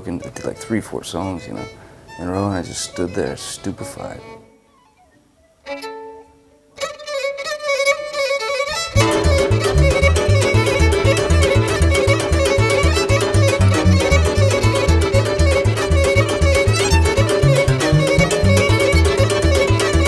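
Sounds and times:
violin: 0:00.0 - 0:20.0
accordion: 0:07.9 - 0:20.0
cimbalom: 0:08.0 - 0:20.0
double bass: 0:09.0 - 0:20.0.

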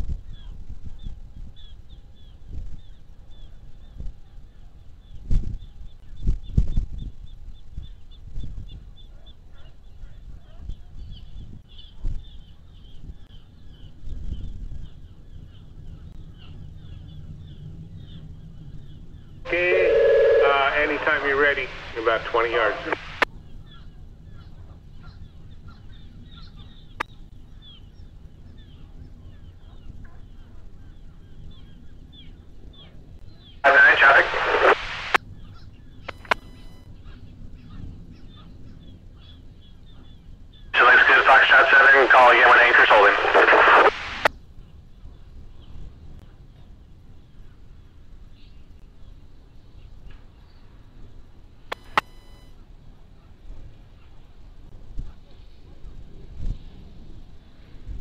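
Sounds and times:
garbled radio transmissions: 0:19.5 - 0:23.3, 0:33.6 - 0:35.2, 0:36.1 - 0:36.7, 0:40.8 - 0:44.3, 0:51.7 - 0:52.3
low steady radio hiss: 0:19.5 - 0:23.3, 0:33.6 - 0:35.2, 0:36.1 - 0:36.8, 0:40.8 - 0:44.3, 0:51.4 - 0:52.9.

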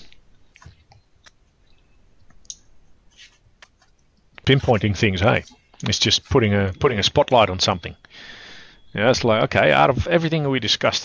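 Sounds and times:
faint clicks: 0:00.0 - 0:02.7.

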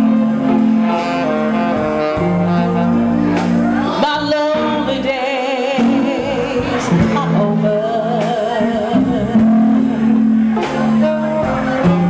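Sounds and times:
blues band playing: 0:00.0 - 0:12.0
saxophone long held notes: 0:00.0 - 0:12.0
woman singing: 0:03.9 - 0:10.0.

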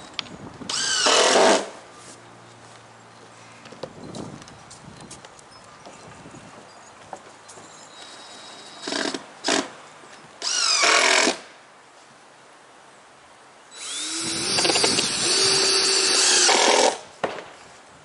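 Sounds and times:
cordless drill driving screws: 0:00.7 - 0:01.7, 0:10.4 - 0:11.4, 0:13.8 - 0:17.0.

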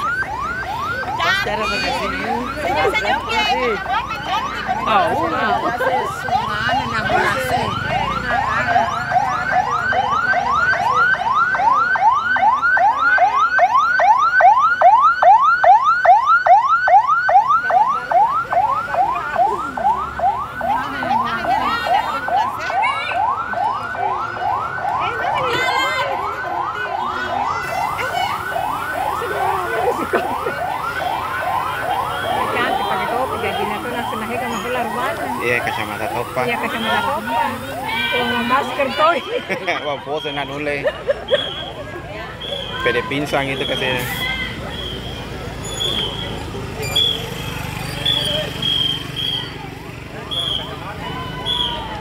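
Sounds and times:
ambulance siren yelping: 0:00.0 - 0:52.0.

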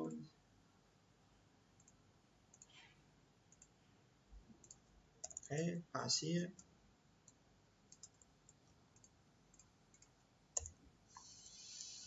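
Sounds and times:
mouse and keyboard clicks: 0:04.6 - 0:05.5, 0:07.9 - 0:11.4
faint hiss: 0:11.1 - 0:12.0.

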